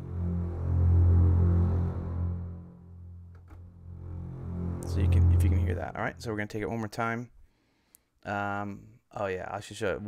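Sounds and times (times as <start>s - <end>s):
string basses holding low note: 0.0s - 6.4s.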